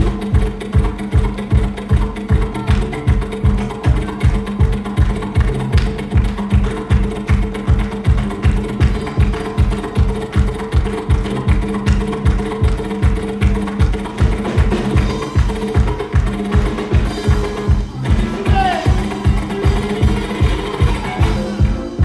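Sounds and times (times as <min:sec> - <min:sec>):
low drum beat: 0:00.0 - 0:22.0.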